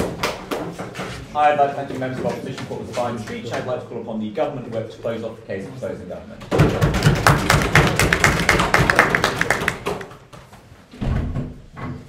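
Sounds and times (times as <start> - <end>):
small audience clapping: 0.0 - 0.9, 6.5 - 10.5
close hand claps: 6.9 - 10.3.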